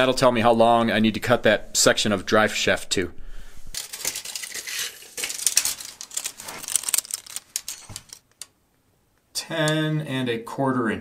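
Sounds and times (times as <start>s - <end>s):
tape measure clicks and rattles: 3.8s - 8.5s.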